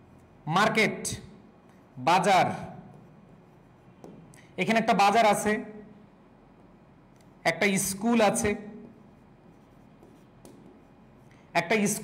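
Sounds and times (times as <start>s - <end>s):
pen scratching and tapping on screen: 2.9s - 4.3s, 8.8s - 11.4s.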